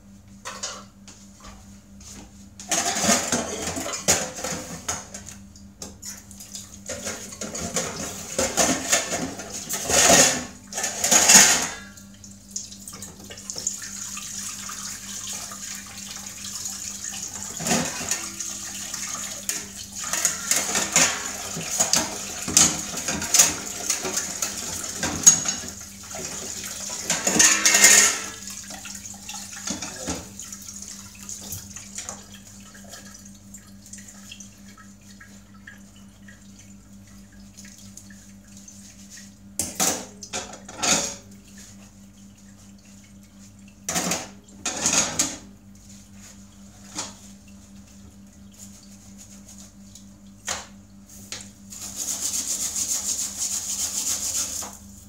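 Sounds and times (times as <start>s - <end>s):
metal pots and utensils clinking: 6.9s - 12.0s, 20.0s - 24.2s, 27.0s - 28.4s.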